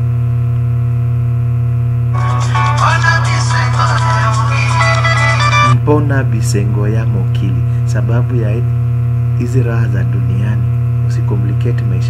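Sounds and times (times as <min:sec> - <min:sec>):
loud electrical hum: 0:00.0 - 0:12.0.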